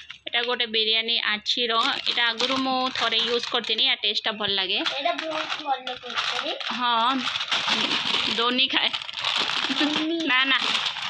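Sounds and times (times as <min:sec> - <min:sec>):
plastic snack packet crinkling: 0:00.0 - 0:00.6, 0:01.7 - 0:11.0
child's voice: 0:04.9 - 0:07.3, 0:09.7 - 0:10.7.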